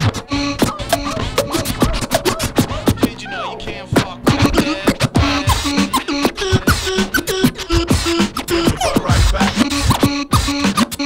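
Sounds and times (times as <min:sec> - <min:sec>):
drum beat: 0:00.0 - 0:03.2, 0:03.9 - 0:11.0
vinyl record scratching: 0:00.0 - 0:11.0.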